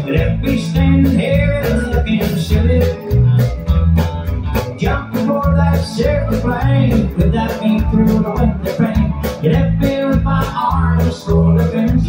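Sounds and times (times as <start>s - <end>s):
person singing: 0.0s - 3.5s, 4.7s - 12.0s
drums keeping a steady beat: 0.0s - 12.0s
live country band playing: 0.0s - 12.0s.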